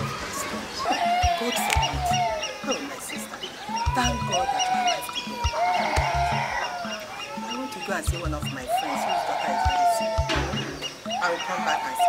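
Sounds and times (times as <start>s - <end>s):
film soundtrack music: 0.0s - 11.5s.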